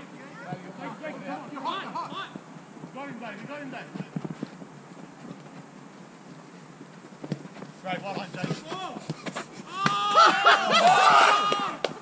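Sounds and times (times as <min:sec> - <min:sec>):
faint outdoor hiss: 0:00.0 - 0:12.0
soft thumps of ball play: 0:07.1 - 0:10.0.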